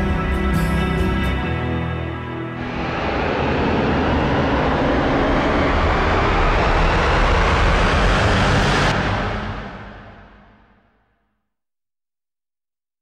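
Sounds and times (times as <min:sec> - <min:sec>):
loud rushing rumble: 0:02.5 - 0:11.0.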